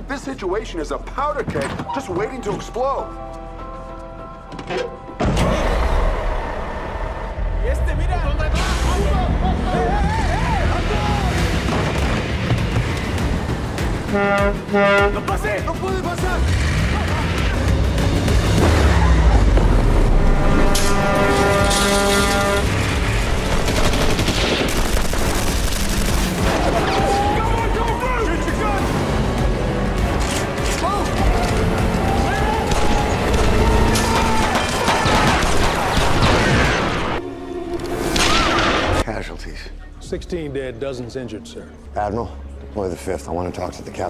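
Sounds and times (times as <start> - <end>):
dramatic music score: 0.0 - 44.0
gunfire bursts: 23.4 - 26.7.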